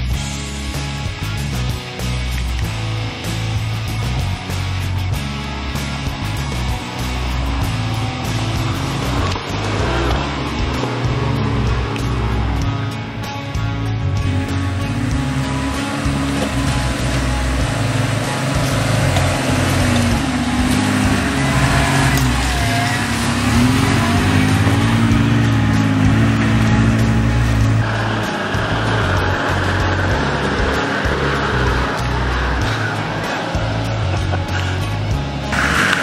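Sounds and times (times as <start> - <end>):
background music: 0.0 - 36.0
vehicle engine revving: 0.0 - 36.0.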